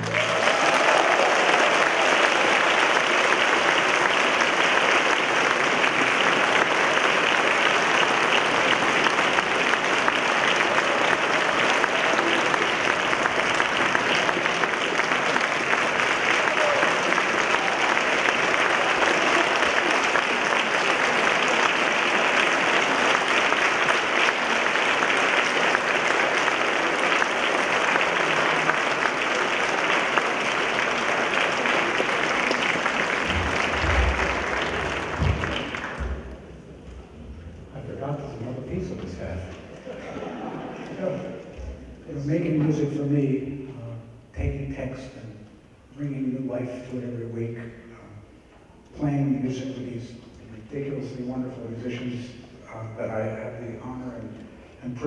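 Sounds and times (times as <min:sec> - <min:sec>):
audience applauding: 0:00.0 - 0:42.6.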